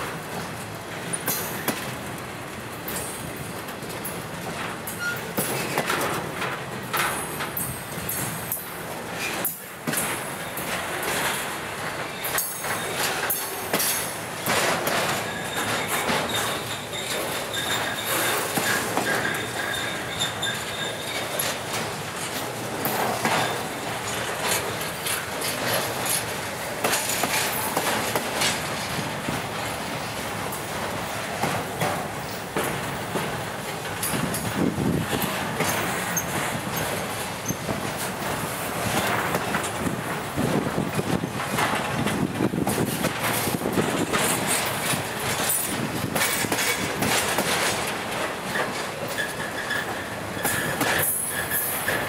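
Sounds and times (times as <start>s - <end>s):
freight train wheels on rails: 0.0s - 52.0s
wheels clicking over rail joints: 0.0s - 52.0s
faint high wheel squeal: 4.9s - 5.4s, 15.2s - 21.4s, 48.5s - 52.0s.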